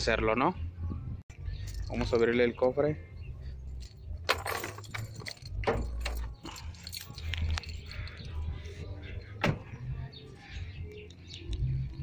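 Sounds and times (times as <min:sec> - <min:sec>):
car door clicks and knocks: 0:09.4 - 0:09.7.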